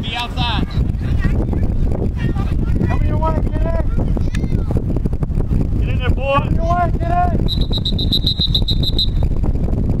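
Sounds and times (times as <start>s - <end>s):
wind rumble on microphone: 0.0s - 10.0s
referee whistle trilled blast: 7.4s - 9.2s.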